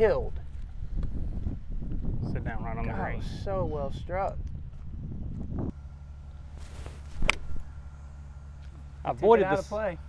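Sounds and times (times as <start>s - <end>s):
wind rumble on microphone: 0.0s - 5.8s
golf club striking ball: 7.1s - 8.0s.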